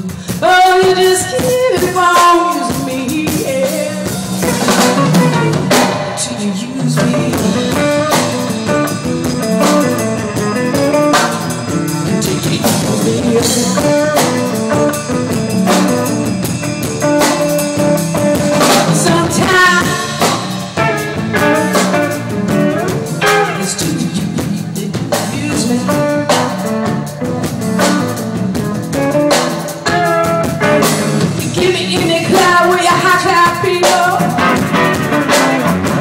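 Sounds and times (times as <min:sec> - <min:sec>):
bass guitar: 0:00.0 - 0:36.0
drum kit: 0:00.0 - 0:36.0
electric guitar: 0:00.0 - 0:36.0.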